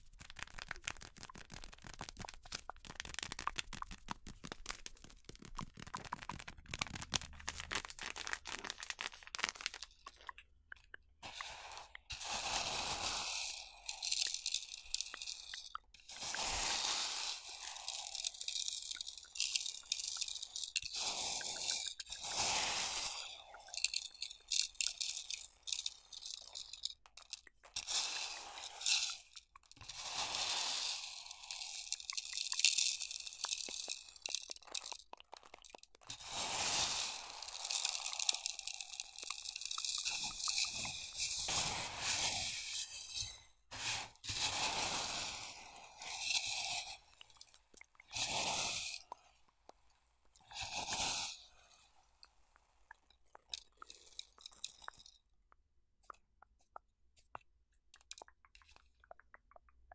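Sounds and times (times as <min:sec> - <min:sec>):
chip bag crunching and crinkling: 0:00.0 - 0:10.4, 0:29.8 - 0:42.5.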